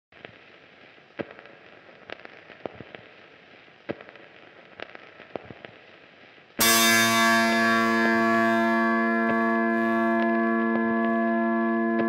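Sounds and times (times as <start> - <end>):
crackling clicks and pops: 0.1 - 6.7, 7.6 - 12.0
steady hiss: 0.2 - 12.0.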